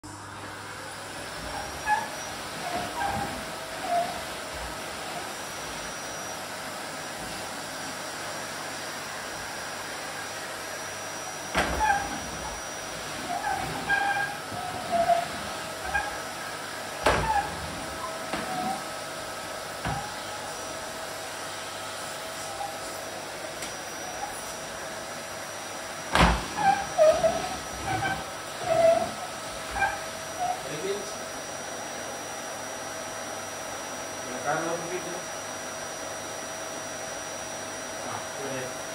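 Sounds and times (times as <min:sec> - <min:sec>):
vacuum cleaner motor running: 0:00.1 - 0:38.9
short squeaky sounds: 0:13.3 - 0:16.2, 0:26.6 - 0:30.7.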